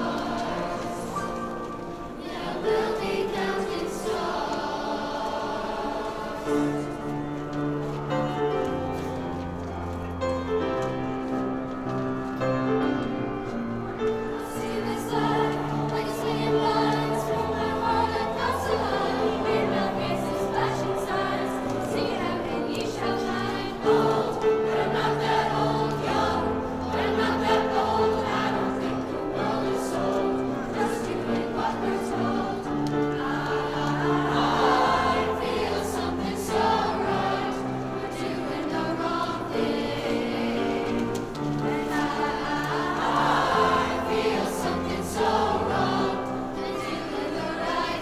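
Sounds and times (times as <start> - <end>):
choir singing in parts: 0.0 - 48.0
piano chords: 0.0 - 48.0.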